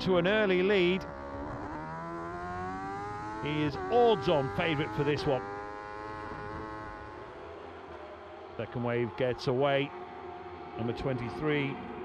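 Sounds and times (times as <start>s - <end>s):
motorcycle engine at high revs: 0.8s - 7.7s.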